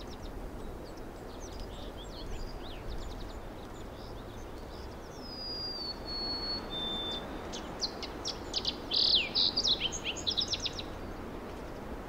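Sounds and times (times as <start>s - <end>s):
birds singing: 0.0s - 11.9s.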